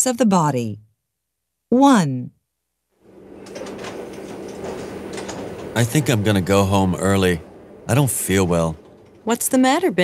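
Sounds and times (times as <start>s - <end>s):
steady low hum: 3.0s - 10.0s.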